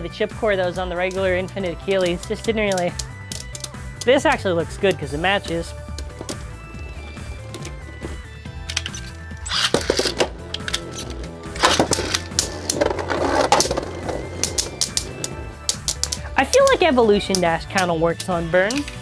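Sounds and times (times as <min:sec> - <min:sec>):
background music with low beat: 0:00.1 - 0:19.0.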